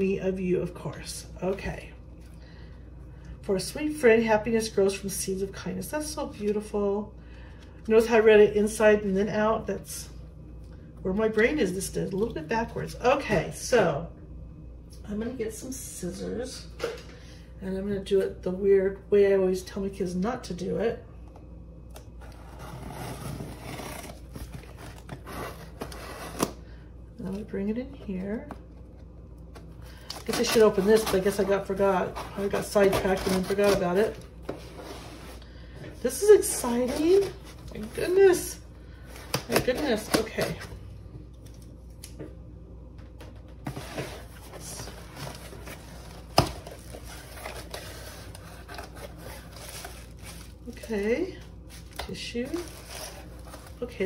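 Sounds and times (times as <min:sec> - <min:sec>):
cardboard scraping and rustling: 0:22.2 - 0:26.5, 0:30.3 - 0:35.4, 0:43.6 - 0:50.5, 0:51.7 - 0:53.8.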